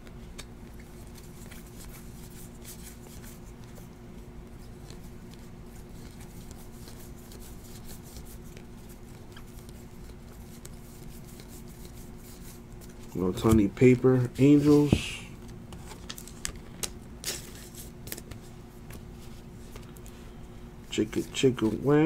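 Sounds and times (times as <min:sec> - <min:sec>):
faint steady hum: 0:00.0 - 0:22.0
trading cards clicking and rustling: 0:04.6 - 0:20.1.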